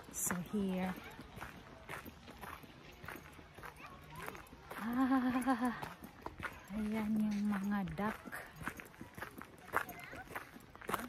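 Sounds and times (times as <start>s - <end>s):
footsteps on gravel: 0.0s - 11.0s
woman laughing: 4.8s - 6.0s.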